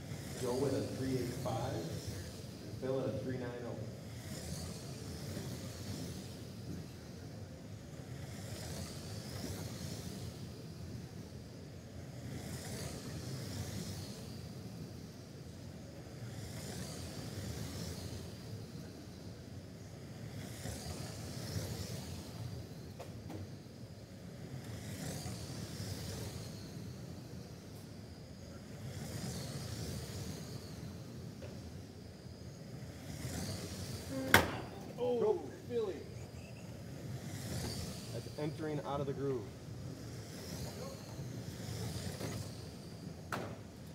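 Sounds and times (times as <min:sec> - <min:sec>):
toy race cars motor and tyres: 0:00.0 - 0:43.9.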